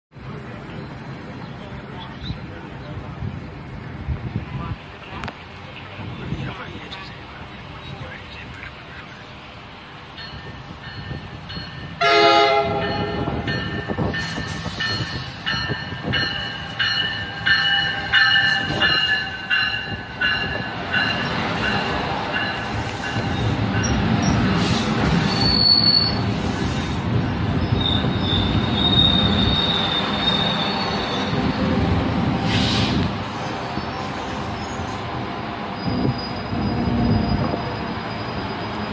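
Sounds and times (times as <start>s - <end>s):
train coaches rumbling past: 0.2s - 38.9s
locomotive bell ringing: 10.0s - 24.4s
train horn: 12.0s - 13.5s
wheel and brake squeals: 23.1s - 26.9s, 27.5s - 31.6s, 35.7s - 38.9s.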